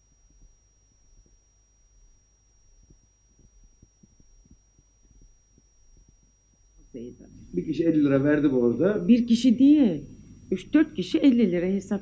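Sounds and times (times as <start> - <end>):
soft low thumps: 0.0 - 7.0
faint low hum: 0.0 - 12.0
thin high whine: 0.0 - 12.0.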